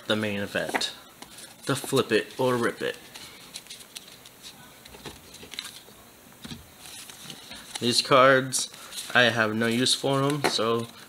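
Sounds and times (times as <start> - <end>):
trading cards rustling and clicking: 0.6 - 11.0.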